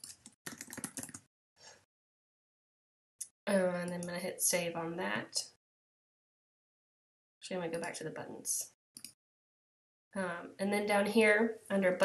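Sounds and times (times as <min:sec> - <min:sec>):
typing on computer keyboard: 0:00.0 - 0:01.3.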